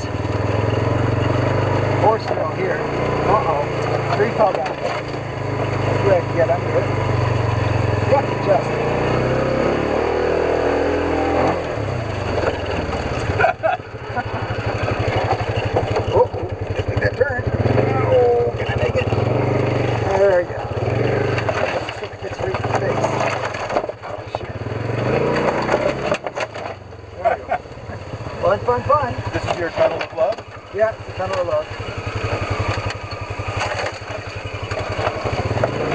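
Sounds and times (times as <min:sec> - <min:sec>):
off-road vehicle engine running: 0:00.0 - 0:35.9
branches scraping and snapping: 0:03.0 - 0:06.0, 0:19.9 - 0:26.9, 0:29.3 - 0:35.9.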